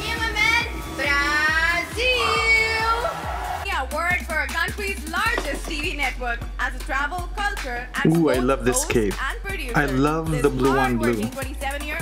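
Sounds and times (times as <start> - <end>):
backing music with electronic beat: 7.6 - 12.0.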